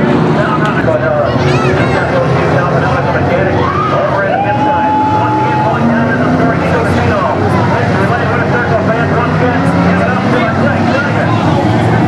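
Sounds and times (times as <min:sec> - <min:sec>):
indistinct voices talking: 0:00.0 - 0:12.0
race car engine idling: 0:00.0 - 0:12.0.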